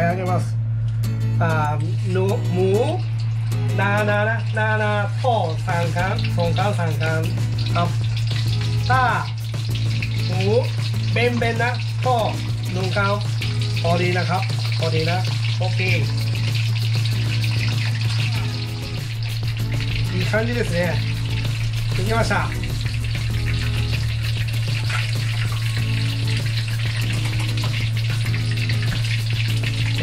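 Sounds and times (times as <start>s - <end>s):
background music with melody: 0.0s - 4.6s, 5.7s - 30.0s
food deep-frying in oil: 1.5s - 30.0s.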